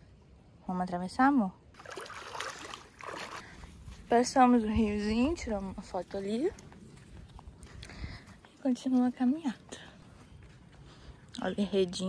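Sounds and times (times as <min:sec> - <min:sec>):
feet wading and splashing water: 0:01.8 - 0:04.2.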